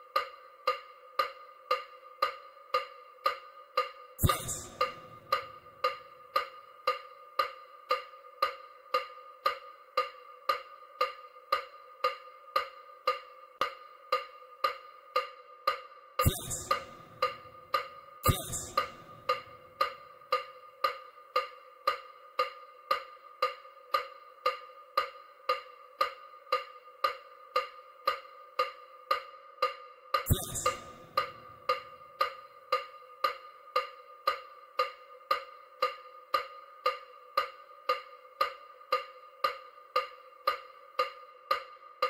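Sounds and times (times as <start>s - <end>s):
electronic wood-block ticks: 0.0s - 42.0s.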